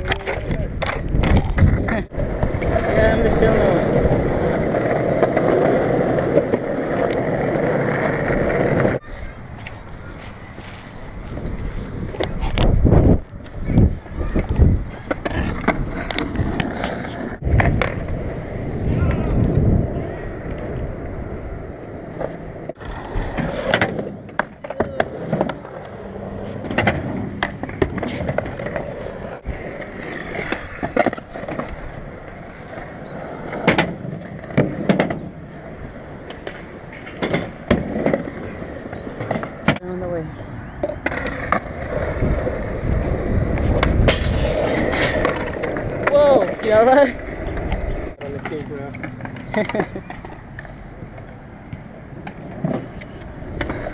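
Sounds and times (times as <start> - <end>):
skateboard wheels rolling: 0.0 - 53.9
skateboards clacking on ground: 0.0 - 53.9.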